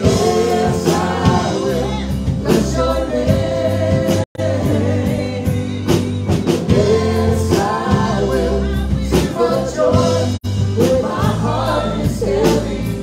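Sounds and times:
drum kit: 0:00.0 - 0:13.0
keyboard: 0:00.0 - 0:13.0
woman singing lead: 0:00.0 - 0:13.0.

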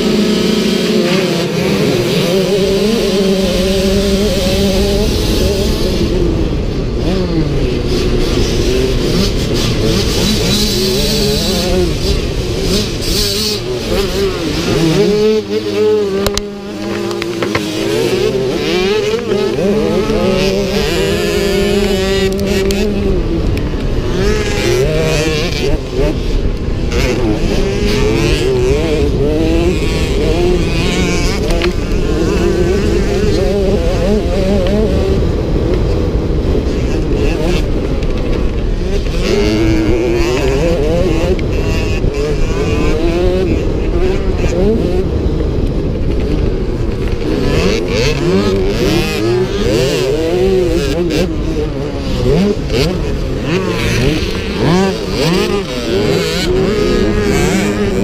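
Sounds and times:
motocross bike engine revving: 0:00.0 - 0:58.0
other motocross bikes: 0:00.0 - 0:58.0
wind noise: 0:00.0 - 0:58.0.

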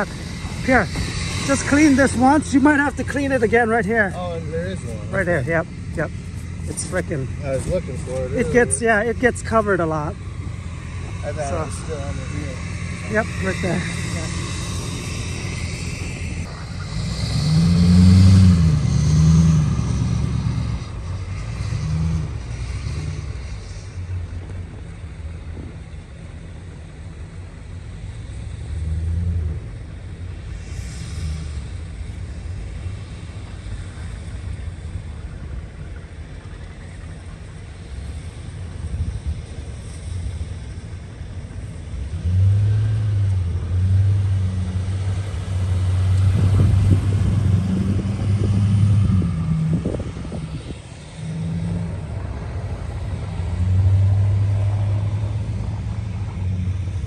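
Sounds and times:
truck engine pushing snow: 0:00.0 - 0:57.0.

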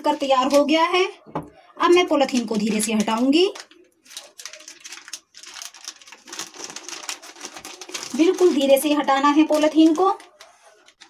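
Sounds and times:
plastic sheet crinkling: 0:00.0 - 0:00.9, 0:01.9 - 0:11.0.

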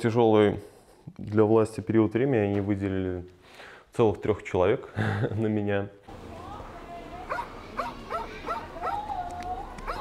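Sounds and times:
animal whining: 0:07.3 - 0:10.0
animal yelping: 0:07.3 - 0:10.0.

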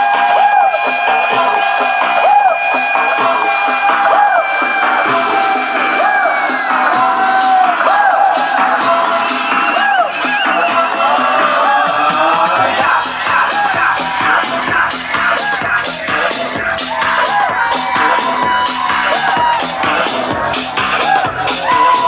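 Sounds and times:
crowd cheering: 0:00.0 - 0:22.0
loud dance music with synths: 0:00.0 - 0:22.0.

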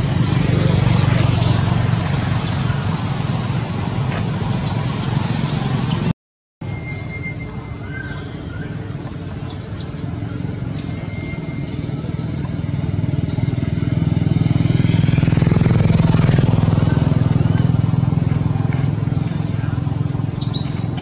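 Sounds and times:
vehicle engine passing by: 0:00.0 - 0:06.1, 0:10.0 - 0:21.0
bird chirps: 0:04.6 - 0:13.6, 0:19.1 - 0:21.0.

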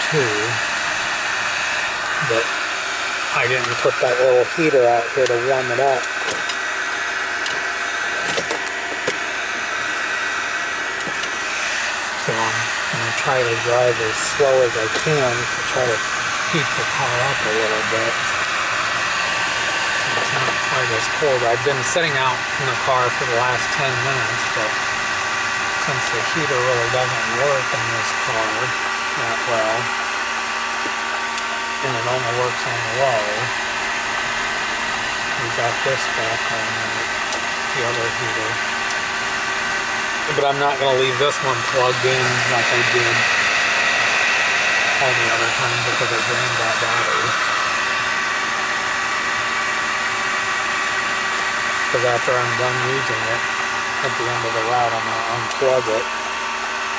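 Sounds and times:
heater fan blowing: 0:00.0 - 0:56.9.

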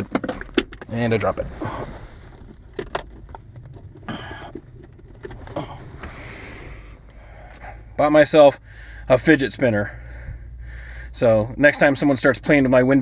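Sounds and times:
rustling: 0:00.0 - 0:07.8
low vehicle hum: 0:00.0 - 0:13.0.

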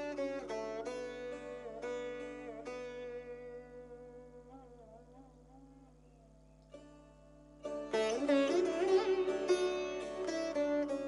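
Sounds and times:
sitar notes: 0:00.0 - 0:11.0.

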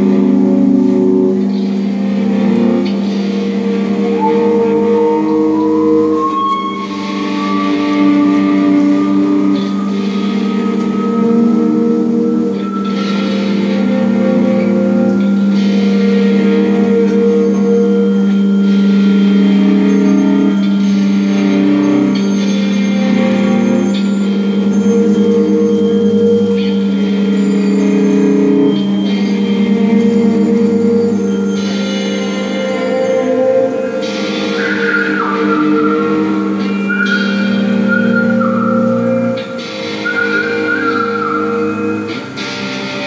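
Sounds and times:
electric guitar and electronics drone: 0:00.0 - 0:43.0.

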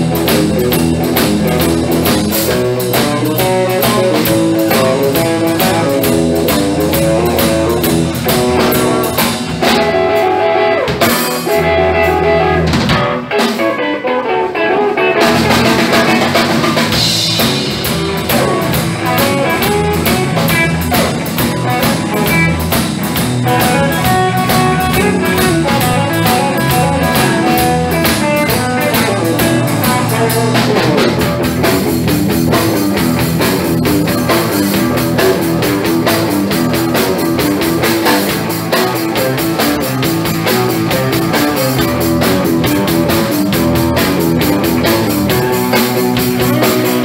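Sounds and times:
drum kit: 0:00.0 - 0:47.0
electric guitars: 0:00.0 - 0:47.0.

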